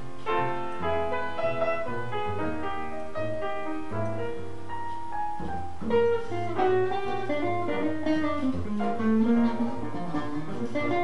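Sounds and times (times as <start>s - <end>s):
guitar: 0.0s - 11.0s
piano: 0.0s - 11.0s
plucked double bass: 0.0s - 11.0s.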